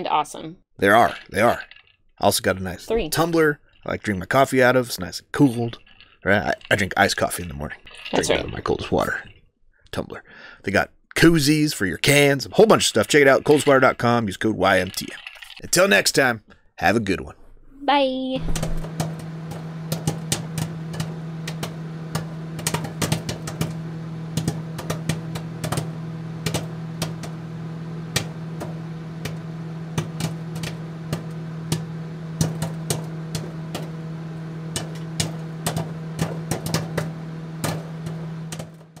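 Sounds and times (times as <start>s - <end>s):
steady low hum: 18.4s - 39.0s.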